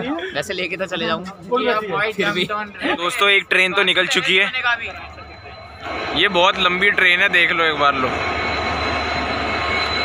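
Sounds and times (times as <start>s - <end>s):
diesel locomotive engine drone: 2.9s - 10.0s
train rumble: 3.2s - 10.0s.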